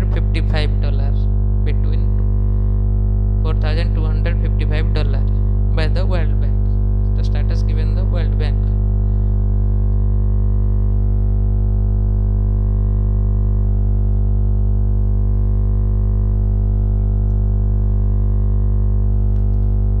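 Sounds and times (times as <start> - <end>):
electrical hum with buzzing: 0.0 - 20.0.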